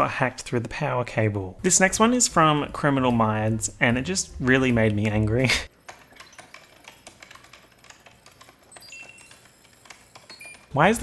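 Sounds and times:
computer keyboard typing: 4.8 - 11.0.

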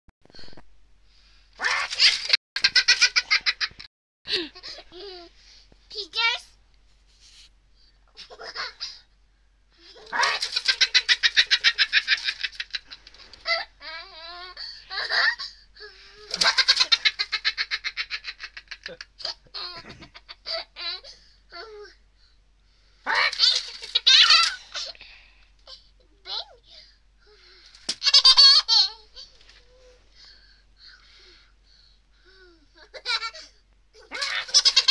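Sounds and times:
small child laughing: 1.6 - 5.3, 8.1 - 9.0, 9.8 - 15.6, 16.2 - 21.9, 23.1 - 25.0, 28.0 - 29.9, 32.8 - 34.9.

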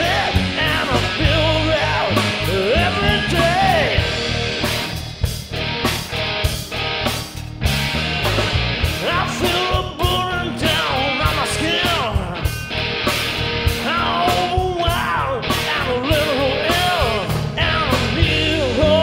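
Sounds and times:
lead guitar melody with pitch bends: 0.0 - 19.0
live rock band playing: 0.0 - 19.0.

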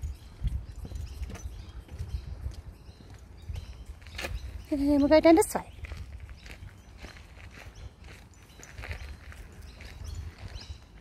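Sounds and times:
footsteps scuffing on dirt: 0.7 - 11.0.

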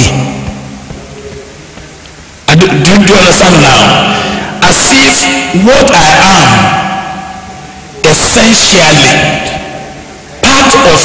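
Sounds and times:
man speaking over a microphone: 0.0 - 0.6, 2.4 - 7.4, 8.0 - 11.0
faint steady hum: 0.0 - 11.0.

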